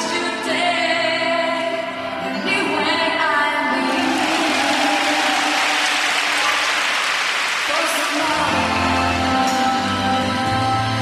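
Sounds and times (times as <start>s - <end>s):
faint background music: 0.0s - 5.8s
audience applauding: 3.9s - 8.6s.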